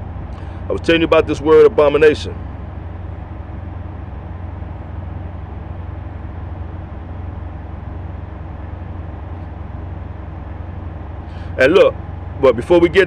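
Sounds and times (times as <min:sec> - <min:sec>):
low vehicle engine hum: 0:00.0 - 0:13.0.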